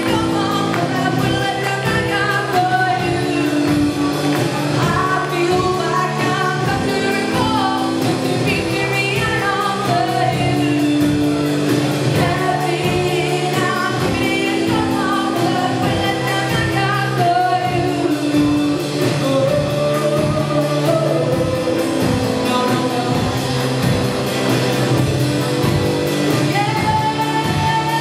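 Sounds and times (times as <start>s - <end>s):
person singing: 0.0s - 24.7s, 25.6s - 28.0s
drum kit beat: 0.0s - 28.0s
electric guitar: 0.0s - 28.0s
keyboard: 0.0s - 28.0s.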